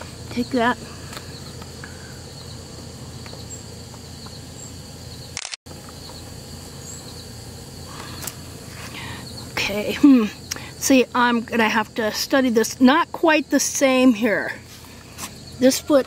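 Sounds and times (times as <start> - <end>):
crickets chirring: 0.0 - 16.0
low outdoor background: 0.0 - 16.0.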